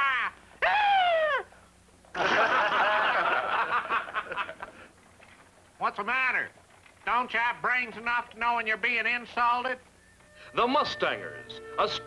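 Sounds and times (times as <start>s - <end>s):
men laughing and hollering: 2.2s - 4.6s.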